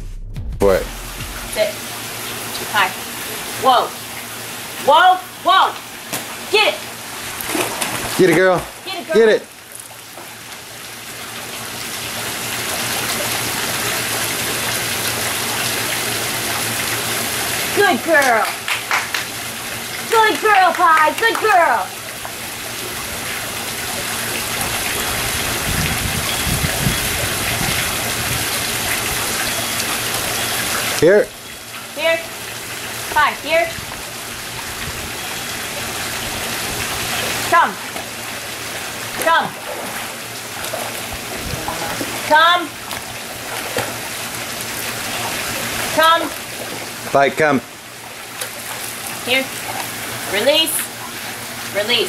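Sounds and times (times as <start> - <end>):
low thumps: 0.0 - 1.6
running water in pool: 0.9 - 52.0.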